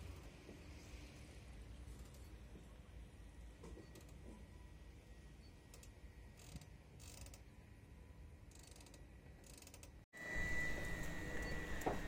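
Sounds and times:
outdoor background noise: 0:00.0 - 0:12.0
rigging clicks and creaks: 0:01.9 - 0:02.7, 0:03.6 - 0:04.5, 0:05.6 - 0:07.5, 0:08.5 - 0:10.0.

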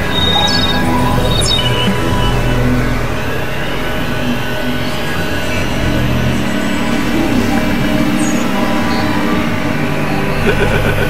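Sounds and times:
low held synthesizer tones: 0:00.0 - 0:11.0.

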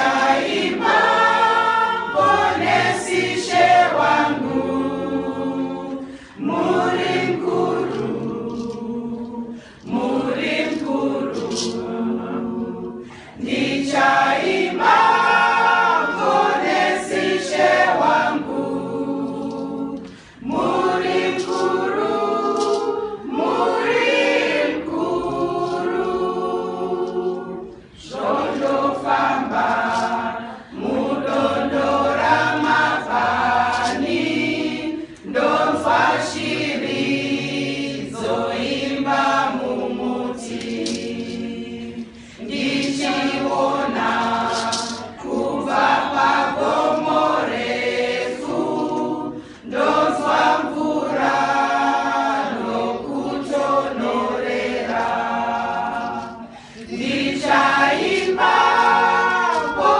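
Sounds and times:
women's choir singing: 0:00.0 - 0:59.9.

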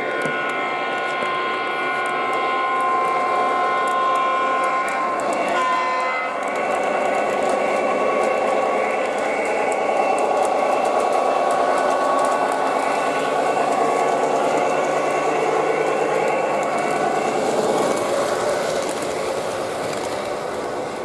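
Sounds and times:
model train whirring and rolling: 0:00.0 - 0:21.0.

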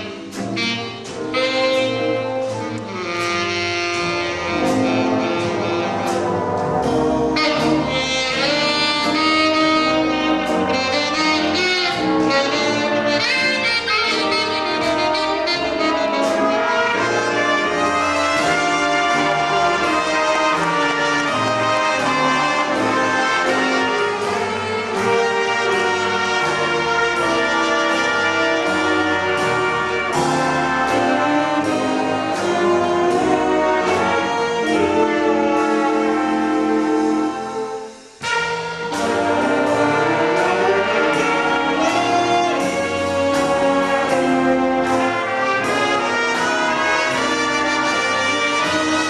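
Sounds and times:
brass holding long chords: 0:00.0 - 0:49.0
jazz big band playing: 0:00.0 - 0:49.0.

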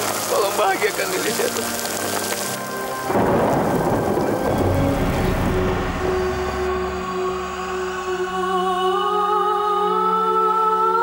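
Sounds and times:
rain: 0:00.0 - 0:08.4
soft background music: 0:00.0 - 0:11.0
thunderclap rumbling: 0:03.1 - 0:08.8.

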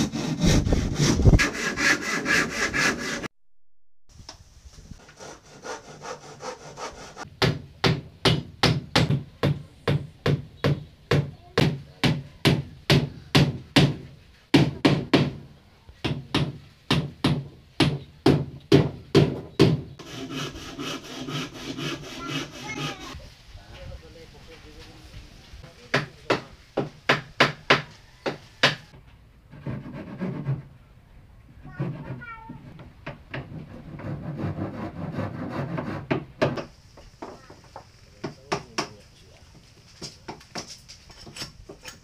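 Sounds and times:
hammering on wooden hull: 0:07.4 - 0:15.4, 0:16.0 - 0:19.9, 0:25.9 - 0:28.8, 0:35.1 - 0:37.4, 0:38.2 - 0:39.0
knocks on wooden planks: 0:16.0 - 0:19.9, 0:35.6 - 0:39.0.

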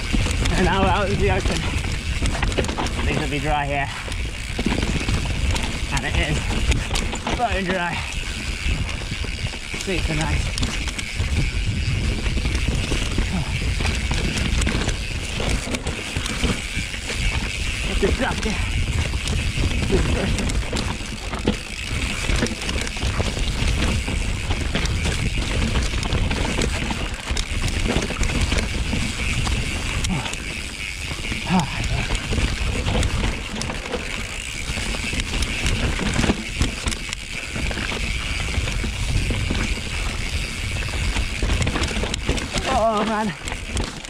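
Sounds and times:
bike knocks and rattles: 0:00.0 - 0:44.0
bike tyre noise: 0:00.0 - 0:44.0
wind buffeting microphone: 0:00.0 - 0:44.0.

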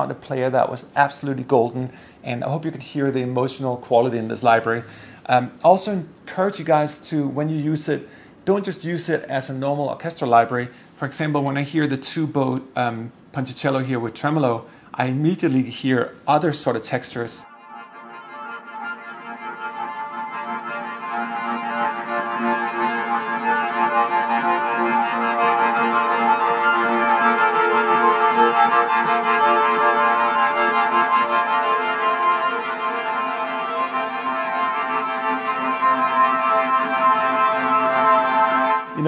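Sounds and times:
violin tremolo notes: 0:17.5 - 0:39.0.

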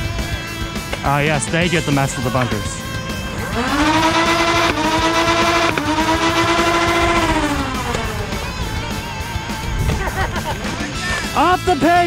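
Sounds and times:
toy blaster flywheels whining: 0:03.5 - 0:08.3.

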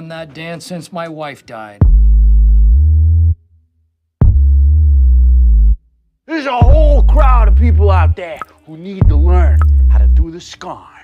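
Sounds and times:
deep synth bass note: 0:01.8 - 0:03.4, 0:04.2 - 0:05.8.

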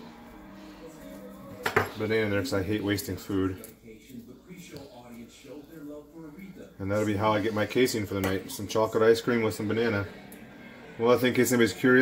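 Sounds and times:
faint background music: 0:00.0 - 0:12.0
kitchenware clinking on counter: 0:01.6 - 0:02.0.

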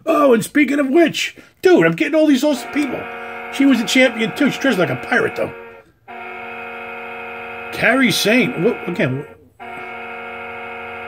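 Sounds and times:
man speaking: 0:00.0 - 0:05.6, 0:07.7 - 0:09.4
steady buzzing hum: 0:02.2 - 0:11.0.

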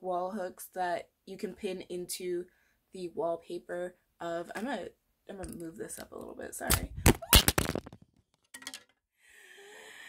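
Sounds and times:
phone hitting the floor: 0:07.0 - 0:08.0.

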